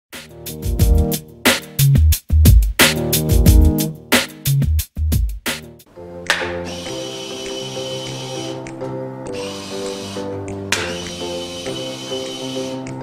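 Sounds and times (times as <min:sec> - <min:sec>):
music with chords and bass: 0:00.2 - 0:06.6.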